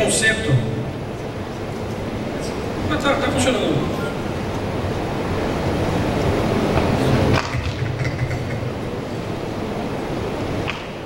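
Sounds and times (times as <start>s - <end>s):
low rumbling room noise: 0.0s - 11.0s.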